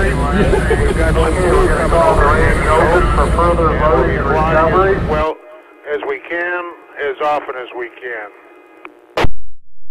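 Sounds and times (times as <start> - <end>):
steady low rumble: 0.0 - 5.8
voices talking: 0.0 - 8.4.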